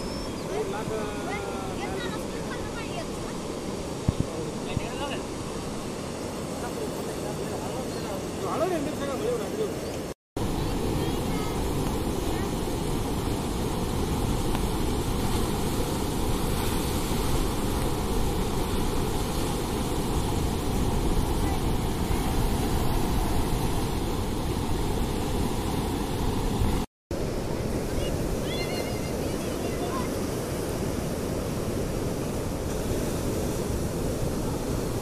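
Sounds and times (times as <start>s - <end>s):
floodwater rushing over a bridge: 27.6s - 30.5s.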